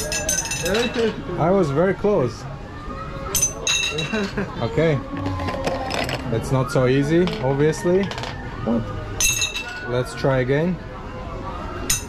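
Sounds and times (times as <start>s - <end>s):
plastic ring clinking on glass: 0.0s - 1.1s.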